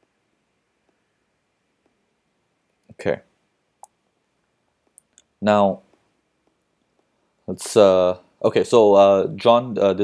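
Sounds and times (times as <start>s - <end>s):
man saying okay: 2.9s - 3.2s, 7.5s - 10.0s.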